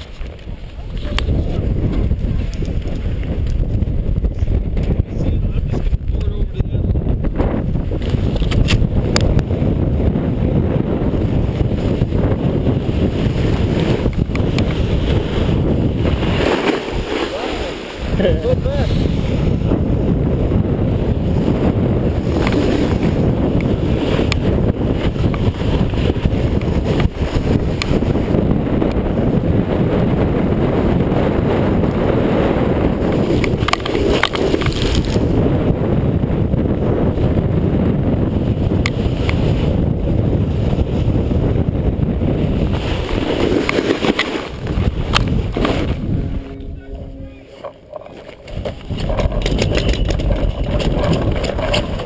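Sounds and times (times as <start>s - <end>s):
wind buffeting microphone: 0.0s - 52.0s
snowboard sliding over snow: 7.5s - 46.7s
loud low rumbling: 44.5s - 52.0s.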